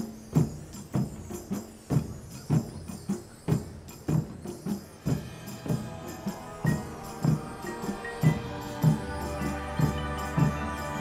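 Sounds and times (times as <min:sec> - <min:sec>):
heavy drum beat: 0:00.0 - 0:11.0
jingling percussion: 0:00.0 - 0:11.0.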